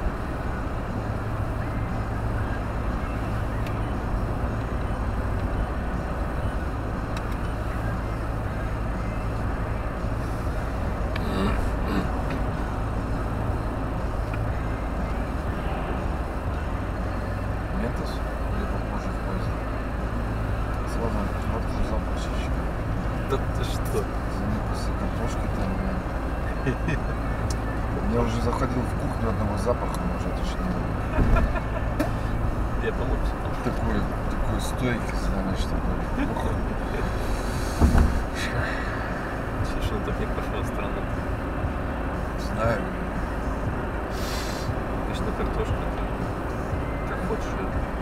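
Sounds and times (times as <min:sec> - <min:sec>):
car engine and road rumble: 0:00.0 - 0:48.0
tyre hiss: 0:44.1 - 0:44.8.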